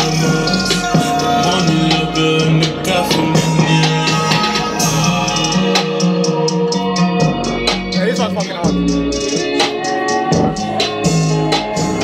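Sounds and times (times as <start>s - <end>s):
bending melodic line: 0.0s - 12.0s.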